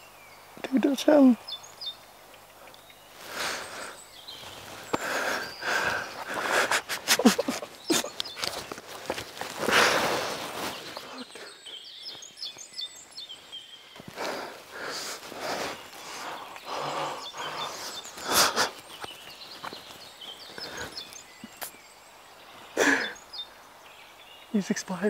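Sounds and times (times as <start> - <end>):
rustle of clothing and brush: 3.0 - 11.4, 12.0 - 21.9
man breathing heavily: 3.2 - 8.2, 8.9 - 11.8, 14.0 - 19.1, 20.5 - 21.2, 22.8 - 23.2.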